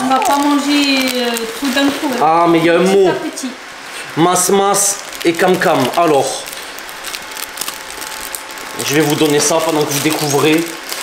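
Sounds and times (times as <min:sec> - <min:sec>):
plastic packaging crinkling: 0:00.0 - 0:02.4, 0:04.3 - 0:11.0.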